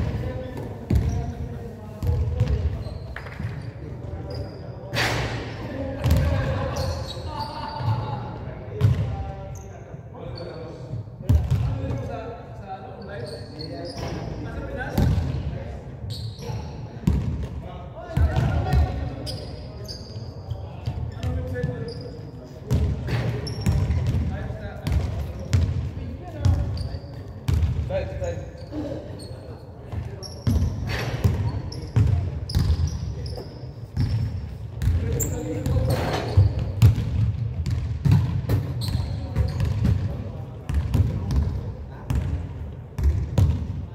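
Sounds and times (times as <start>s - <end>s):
sneakers squeaking: 0.0s - 12.2s, 12.9s - 43.7s.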